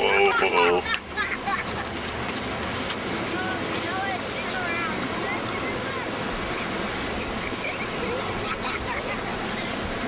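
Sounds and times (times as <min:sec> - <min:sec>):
distant voices: 0:00.0 - 0:10.0
outdoor background noise: 0:00.0 - 0:10.0.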